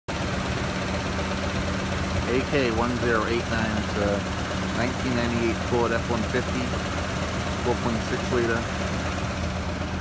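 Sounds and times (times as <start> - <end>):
truck engine idling: 0.1 - 10.0.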